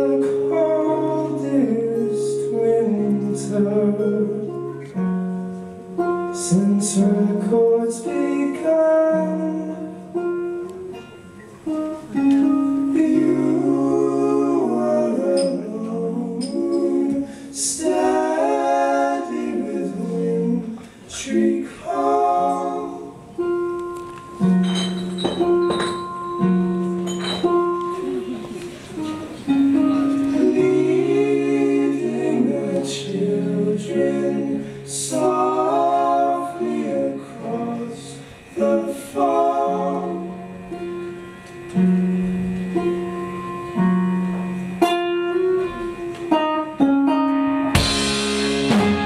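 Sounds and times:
voices singing in harmony: 0.0s - 4.9s, 6.4s - 10.3s, 12.1s - 23.6s, 28.2s - 41.2s
guitar: 0.0s - 49.0s.

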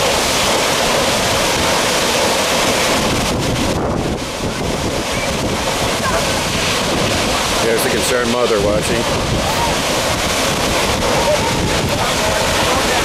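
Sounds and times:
waterfall crashing onto rocks: 0.0s - 13.0s
wind buffeting microphone: 0.0s - 13.0s.

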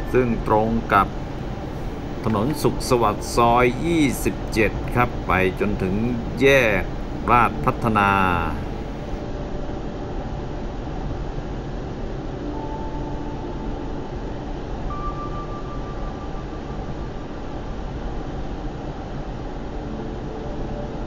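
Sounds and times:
car road and engine noise: 0.0s - 9.2s.

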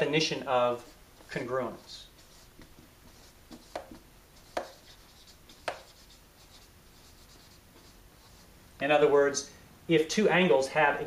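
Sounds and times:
marker writing on whiteboard: 0.8s - 8.5s.

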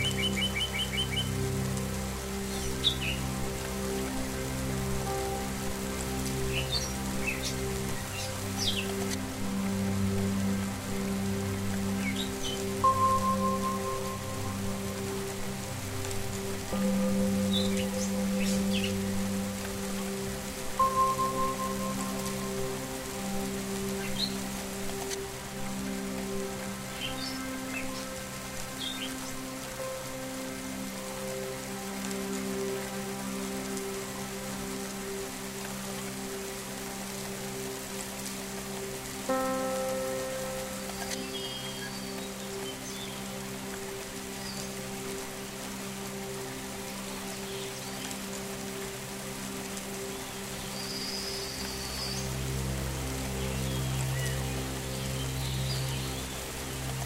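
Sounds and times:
rain pattering: 0.0s - 57.0s
soft sustained drone tones: 0.0s - 57.0s.

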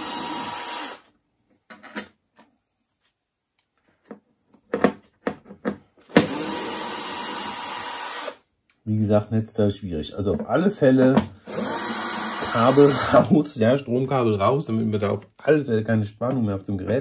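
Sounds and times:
electric screwdriver running: 0.0s - 1.0s, 6.1s - 8.4s, 11.5s - 13.3s.

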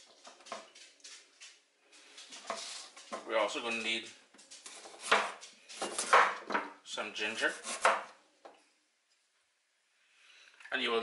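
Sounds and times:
knife slicing ginger: 4.7s - 6.4s, 7.3s - 8.2s.

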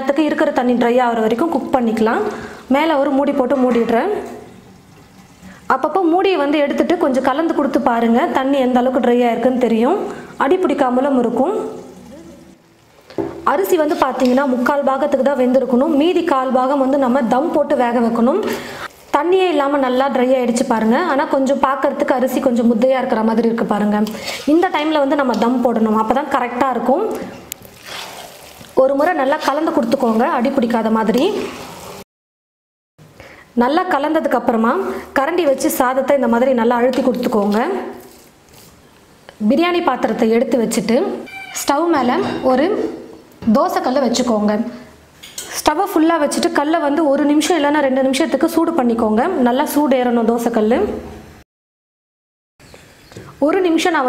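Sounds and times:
woman speaking: 0.0s - 4.4s, 5.7s - 12.6s, 13.4s - 27.4s, 28.8s - 31.6s, 33.6s - 38.0s, 39.4s - 44.9s, 45.6s - 51.1s, 53.4s - 54.0s
rice rustling in a pot: 27.6s - 30.4s.

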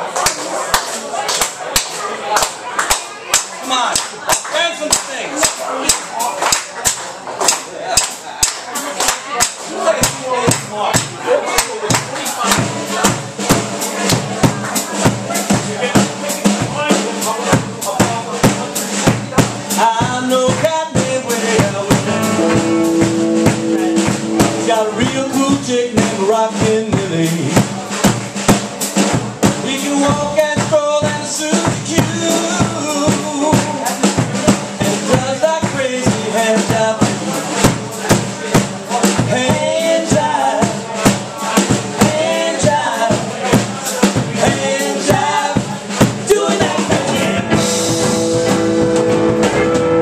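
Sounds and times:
hand claps: 0.0s - 12.7s
drum kit on a steady beat: 2.5s - 50.0s
bass guitar: 10.0s - 50.0s
electric guitar: 21.9s - 24.9s, 47.0s - 50.0s.

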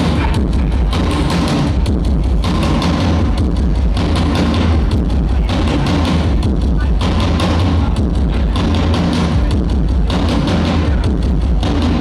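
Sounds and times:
bass guitar: 0.0s - 12.0s
steady drum beat: 0.0s - 12.0s.

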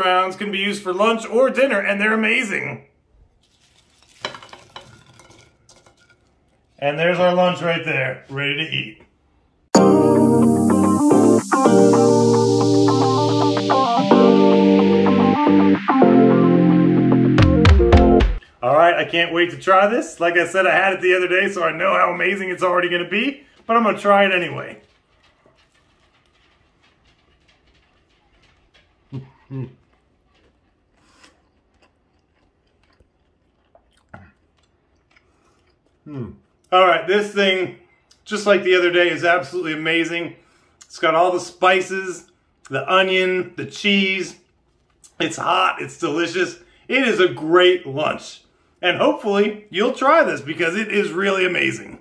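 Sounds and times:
man chewing a sandwich: 3.3s - 4.2s, 24.8s - 36.7s, 44.5s - 45.2s.

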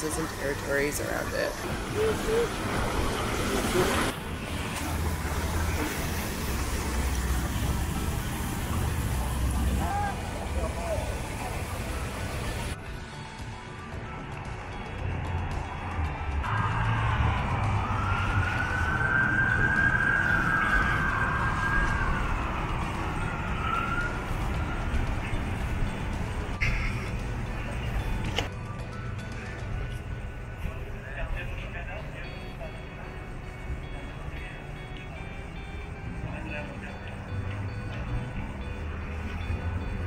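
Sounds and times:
emergency vehicle siren wailing: 1.3s - 29.5s.

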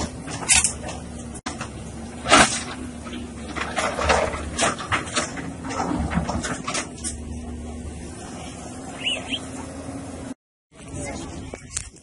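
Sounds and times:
rubble crashing and clattering: 0.0s - 7.3s
diesel engine running: 0.0s - 11.6s.

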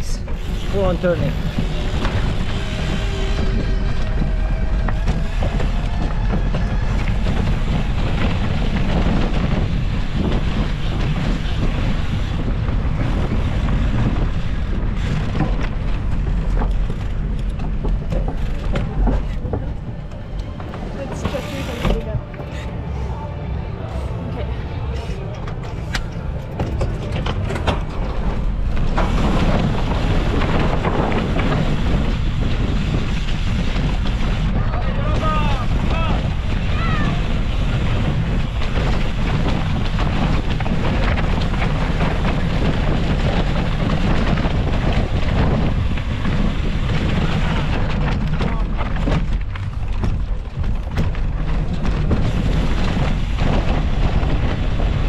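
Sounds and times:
bike tyres rolling over dirt: 0.0s - 22.6s, 26.3s - 55.0s
bike rattling: 0.0s - 22.9s, 24.9s - 55.0s
wind rushing over microphone: 0.0s - 55.0s.

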